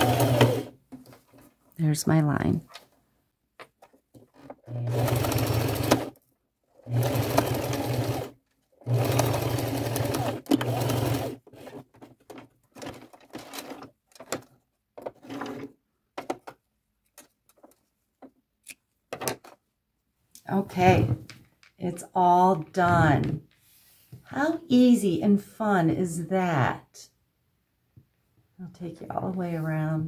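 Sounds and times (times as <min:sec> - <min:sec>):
sewing machine stitching: 0:00.0 - 0:00.8, 0:04.3 - 0:12.0.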